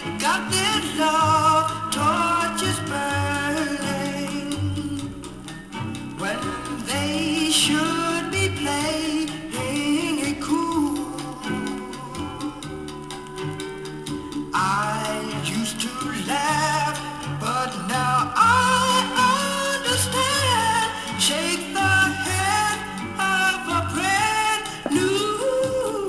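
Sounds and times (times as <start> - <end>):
vinyl record playing: 0.0 - 26.0
person singing over a band: 14.7 - 26.0.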